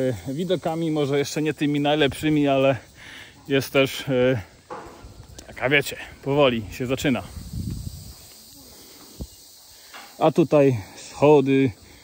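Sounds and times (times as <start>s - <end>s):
high insect hiss: 0.0s - 12.0s.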